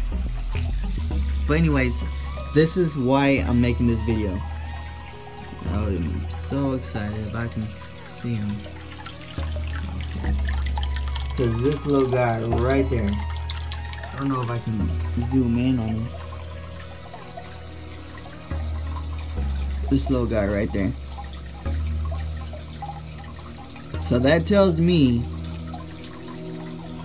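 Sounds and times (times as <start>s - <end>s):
drops and bubbles ticking: 0.0s - 27.0s
low steady hum: 0.0s - 27.0s
water trickling and dripping: 0.0s - 27.0s.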